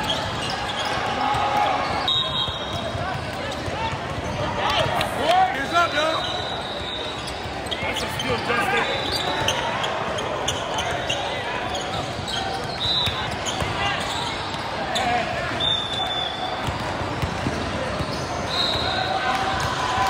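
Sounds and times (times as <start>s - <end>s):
sneakers squeaking on court: 0.0s - 4.9s, 5.6s - 19.1s
players and spectators calling out: 0.0s - 20.0s.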